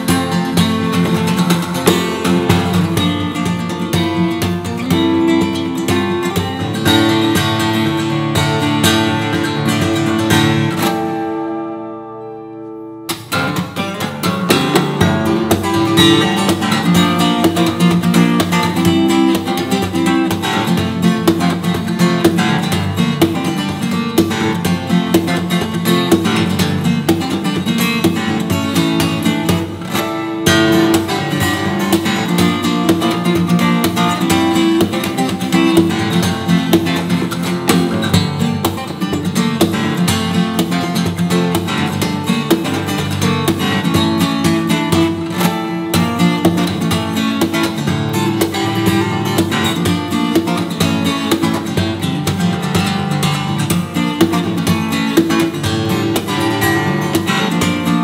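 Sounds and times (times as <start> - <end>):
fingerstyle acoustic guitar: 0.0 - 58.0.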